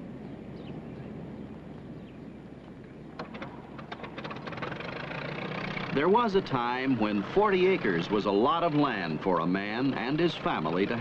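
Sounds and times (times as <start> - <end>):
engine running: 2.4 - 11.0
irregular clicks and crackle: 2.6 - 5.9.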